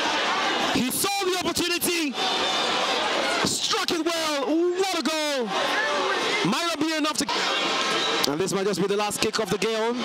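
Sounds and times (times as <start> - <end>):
stadium crowd noise: 0.0 - 10.0
man commentating: 0.7 - 2.2, 3.4 - 5.6, 6.4 - 7.4, 8.3 - 10.0.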